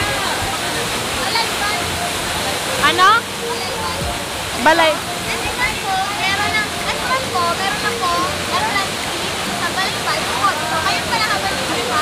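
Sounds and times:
people chattering: 0:00.0 - 0:12.0
waterfall rushing: 0:00.0 - 0:12.0.

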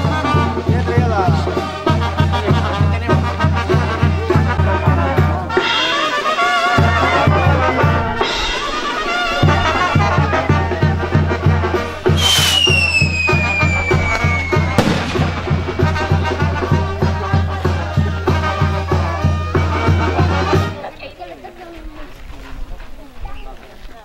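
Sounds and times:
brass band playing: 0:00.0 - 0:20.9
skyrocket whistling: 0:12.0 - 0:15.3
firework bang: 0:12.1 - 0:17.3.

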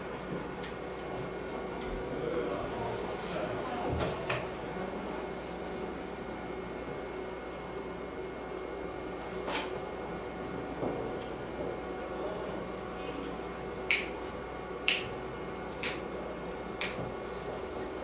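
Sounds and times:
room hum: 0:00.0 - 0:18.0.

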